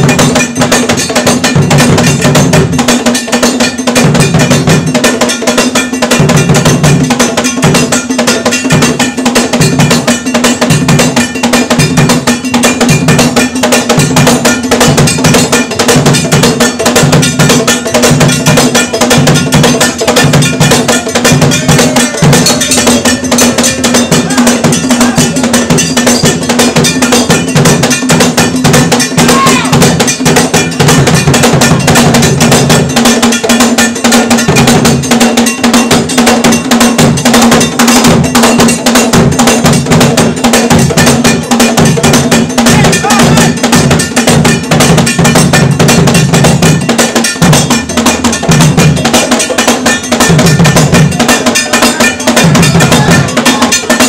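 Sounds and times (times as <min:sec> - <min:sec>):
drums: 0:00.0 - 0:54.0
struck iron bell pattern: 0:00.0 - 0:54.0.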